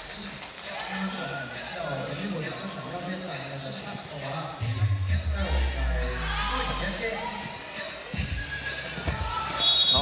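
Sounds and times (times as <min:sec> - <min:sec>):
players' voices: 0:00.0 - 0:10.0
referee's whistle blast: 0:09.4 - 0:10.0.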